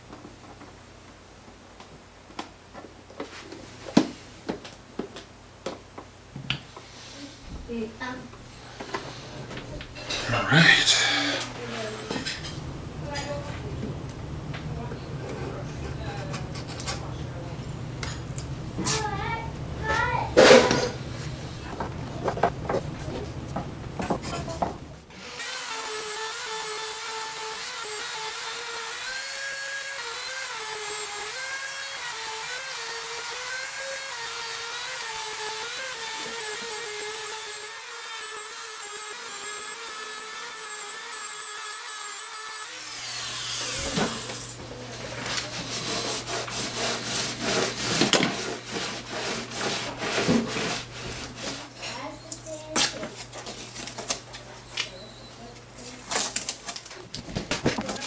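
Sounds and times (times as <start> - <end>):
rotary tool motor whine: 25.1 - 44.6.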